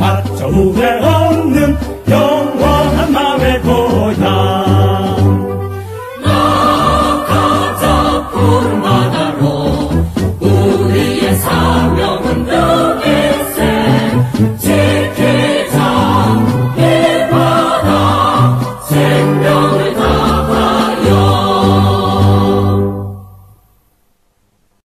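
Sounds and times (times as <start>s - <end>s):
choir singing: 0.0s - 23.6s
instrumental accompaniment: 0.0s - 23.9s.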